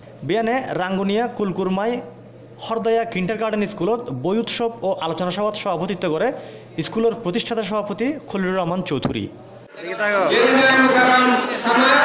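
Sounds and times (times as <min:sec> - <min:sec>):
voices singing held notes: 0:10.3 - 0:12.0.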